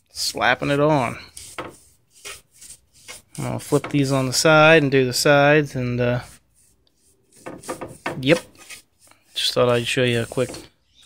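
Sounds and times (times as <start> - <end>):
paint brush scrubbing wood: 0.0 - 10.8.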